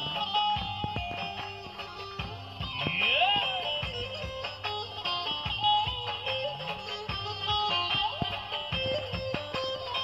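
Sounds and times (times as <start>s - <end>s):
plucked lute: 0.0s - 10.0s
programmed beat: 0.0s - 10.0s.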